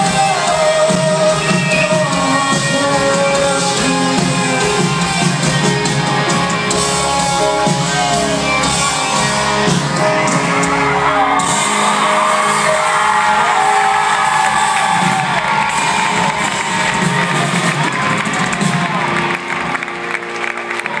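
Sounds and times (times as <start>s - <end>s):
live concert music: 0.0s - 21.0s
crowd cheering and whooping: 4.4s - 21.0s.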